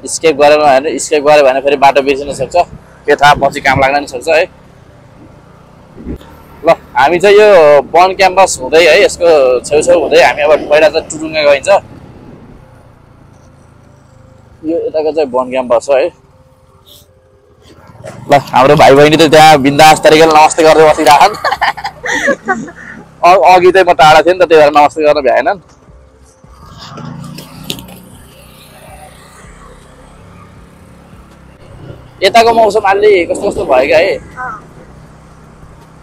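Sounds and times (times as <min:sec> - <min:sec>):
motorcycle engine hum: 0:00.0 - 0:36.0.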